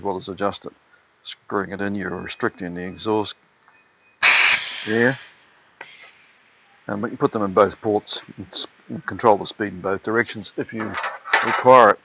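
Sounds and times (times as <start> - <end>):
compressed air hissing from valve exhaust: 4.2 - 9.3.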